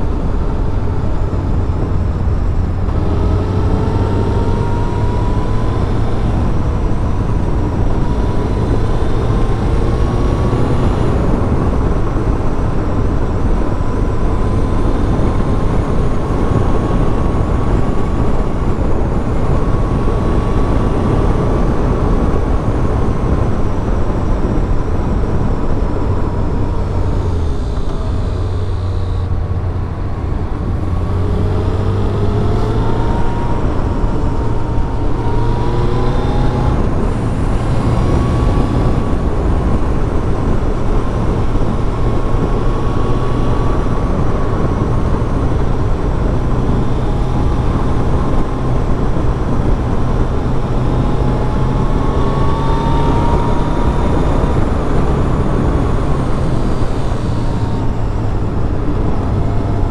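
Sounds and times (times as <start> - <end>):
motorcycle engine running: 0.0 - 59.9
wind rush on microphone: 0.0 - 59.9.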